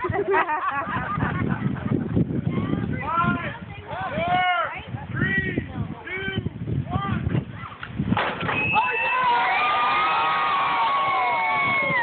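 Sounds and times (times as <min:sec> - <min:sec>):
people laughing: 0:00.0 - 0:02.5
catapult releasing with clatter: 0:07.8 - 0:08.8
people whooping and cheering: 0:08.5 - 0:12.0.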